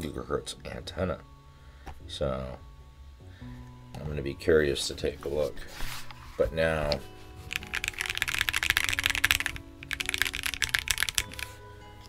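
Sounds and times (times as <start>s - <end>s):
mechanical keyboard key clacks: 7.5s - 11.5s.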